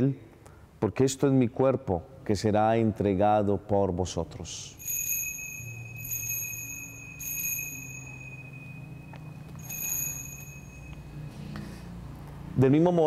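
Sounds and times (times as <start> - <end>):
low steady held tones: 4.7 - 12.0
altar bell ringing: 4.8 - 11.8.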